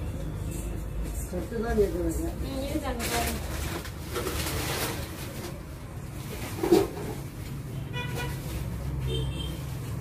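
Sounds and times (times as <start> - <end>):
low traffic rumble: 0.0 - 10.0
vehicle horn toot: 7.8 - 9.6.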